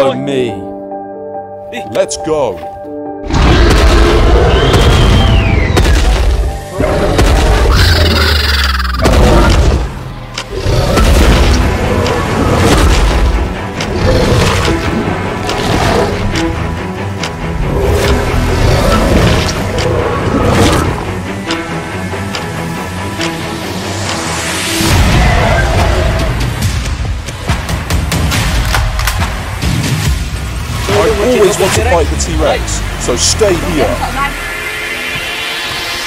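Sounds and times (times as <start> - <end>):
dramatic music: 0.0 - 36.0.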